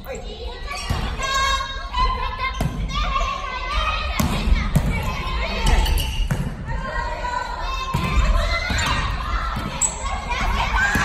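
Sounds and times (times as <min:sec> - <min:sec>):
players' voices: 0:00.0 - 0:11.0
volleyball hit in gymnasium: 0:02.4 - 0:06.9, 0:07.6 - 0:11.0.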